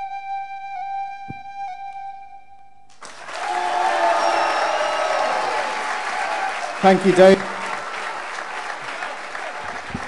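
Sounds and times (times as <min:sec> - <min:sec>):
flute solo: 0:00.0 - 0:02.9
audience applauding: 0:03.0 - 0:10.0.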